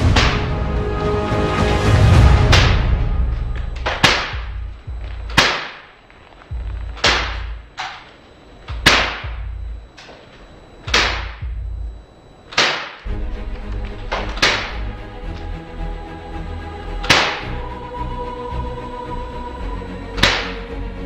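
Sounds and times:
sharp percussive hits: 0.0 - 0.8, 1.6 - 8.0, 8.7 - 9.6, 10.8 - 11.8, 14.0 - 14.9, 17.0 - 17.6, 20.2 - 20.6
low drone: 0.0 - 21.0.

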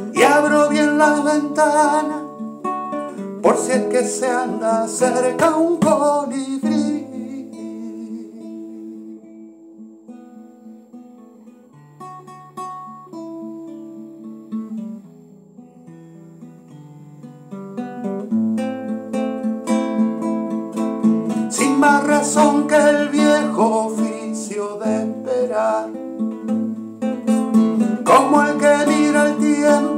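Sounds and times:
acoustic guitar playing: 0.0 - 29.9.

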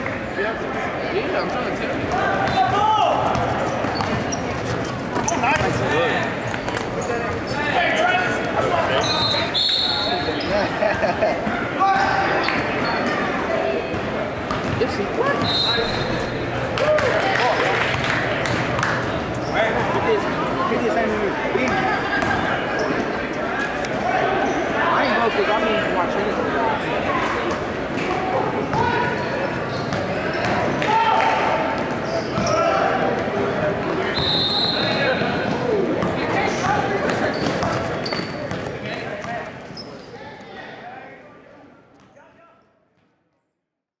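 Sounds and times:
voices in gym: 0.0 - 43.4
echoing crowd chatter: 0.0 - 43.6
basketball bouncing: 2.4 - 5.8, 13.9 - 17.2.

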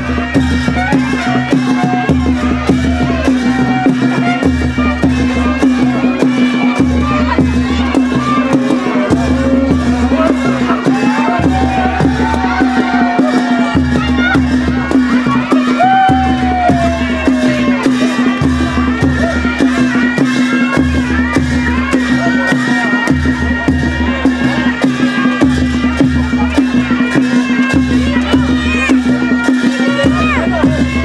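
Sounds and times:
deep drum pattern: 0.0 - 31.0
sharp percussion strokes: 0.0 - 31.0.

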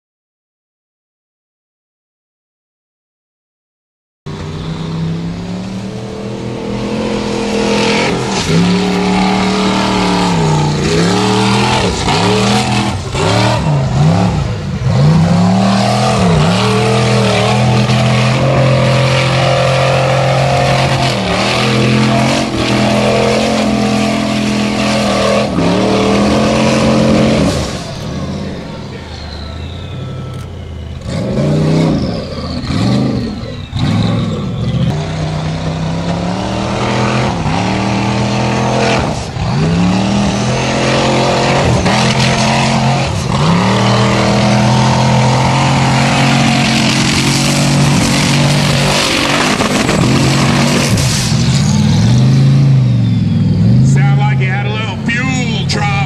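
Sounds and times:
buggy engine revving hard: 4.3 - 56.0.

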